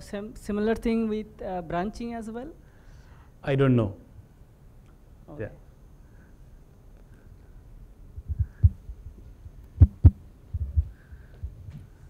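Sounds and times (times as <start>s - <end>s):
microphone handling thumps: 8.2s - 8.8s, 9.8s - 11.9s.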